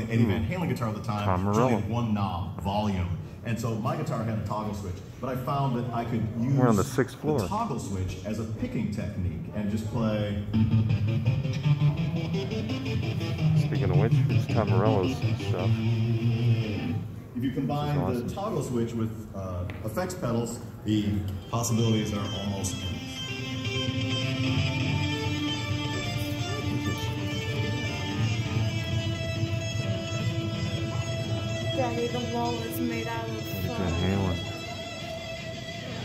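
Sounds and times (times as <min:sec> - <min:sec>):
stuttering electric guitar: 0:10.6 - 0:17.0, 0:23.0 - 0:36.0.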